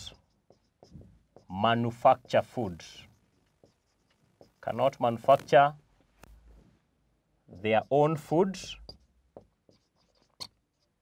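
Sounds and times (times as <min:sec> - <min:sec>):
marker scratching on whiteboard: 0:00.0 - 0:06.4, 0:07.5 - 0:11.0.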